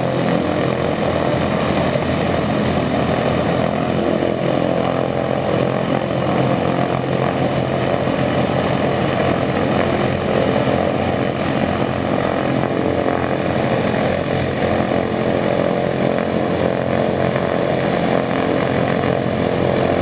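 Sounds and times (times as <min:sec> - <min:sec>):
radial aircraft engines running: 0:00.0 - 0:20.0.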